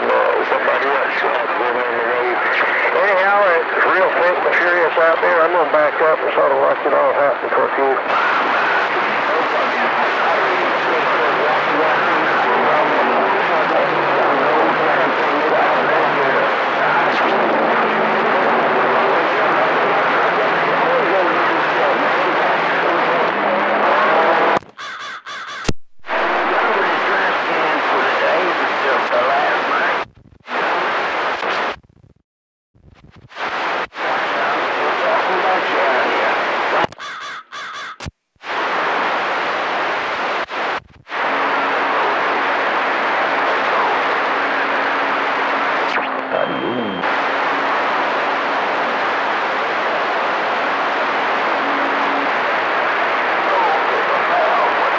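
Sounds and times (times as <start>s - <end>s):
faint overlapping radio voices: 0.0s - 32.2s, 32.8s - 54.9s
radio static: 0.0s - 32.2s, 32.8s - 54.9s.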